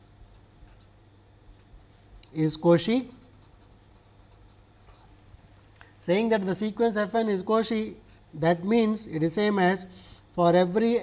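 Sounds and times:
marker pen writing on paper: 0:03.0 - 0:05.1.

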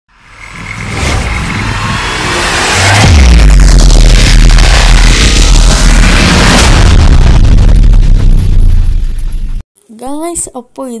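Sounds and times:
noisy whooshing swell: 0:00.2 - 0:09.3
heavy deep bass hit: 0:00.4 - 0:09.6.

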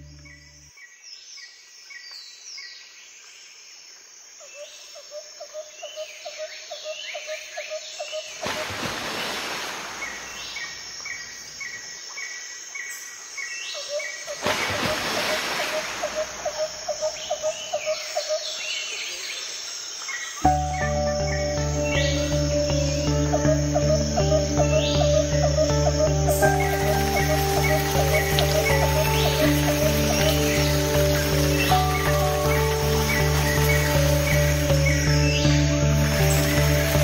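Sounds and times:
bird chirps: 0:09.9 - 0:37.0
ambient music bass and beat: 0:20.4 - 0:37.0
pulsing insect-like trill: 0:20.4 - 0:37.0.

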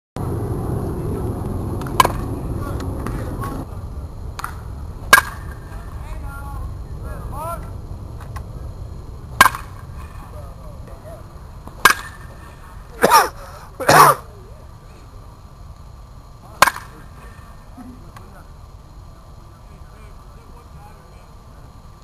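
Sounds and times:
baseball bat striking balls: 0:01.7 - 0:03.6, 0:04.3 - 0:05.9, 0:09.3 - 0:10.3, 0:11.6 - 0:14.2, 0:16.4 - 0:17.1.

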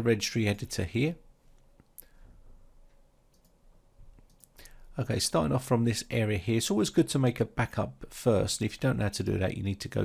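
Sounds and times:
faint computer mouse clicks: 0:03.3 - 0:03.6.

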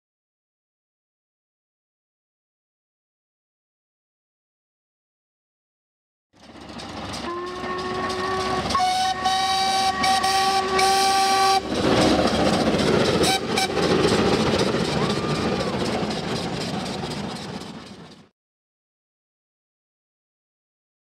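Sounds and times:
steam train rumble and exhaust: 0:06.4 - 0:18.3
steam whistle blasts: 0:07.2 - 0:11.7, 0:13.2 - 0:13.8.

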